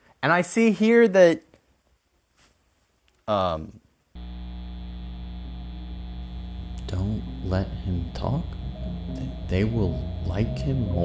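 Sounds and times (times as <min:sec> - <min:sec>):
low buzzy drone: 0:04.2 - 0:11.0.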